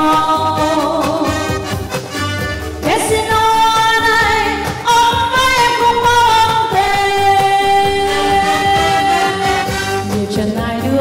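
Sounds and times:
women singing a duet: 0:00.0 - 0:01.6, 0:02.8 - 0:11.0
backing music with steady beat: 0:00.0 - 0:11.0.

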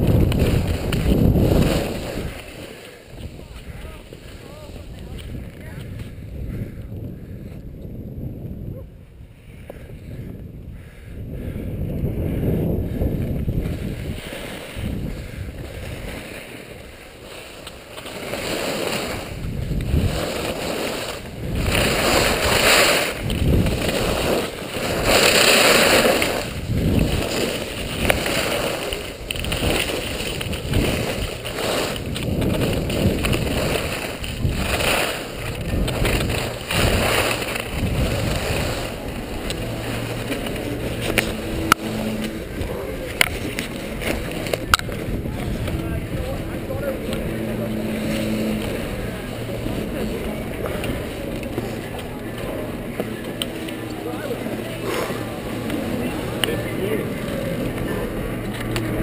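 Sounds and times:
skis scraping on packed snow: 0:00.0 - 0:06.2, 0:12.7 - 0:59.0
wind rushing over microphone: 0:00.0 - 0:59.0.

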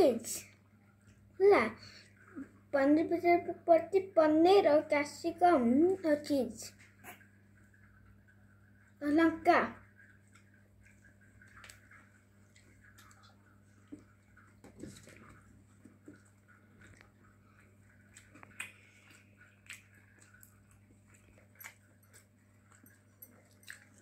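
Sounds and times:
child chewing pizza: 0:06.0 - 0:09.0, 0:09.8 - 0:24.0.

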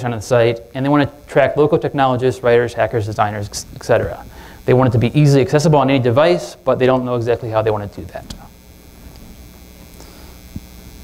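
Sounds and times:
electrical mains hum: 0:00.0 - 0:11.0.

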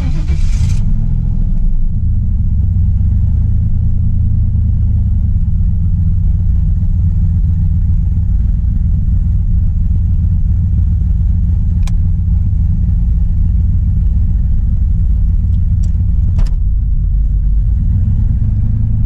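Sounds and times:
car engine idling: 0:00.0 - 0:19.0
sharp click: 0:11.8 - 0:12.0, 0:15.5 - 0:16.6.

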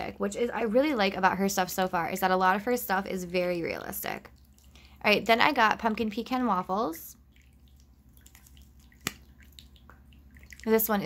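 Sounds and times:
water fountain trickling: 0:03.7 - 0:11.0.

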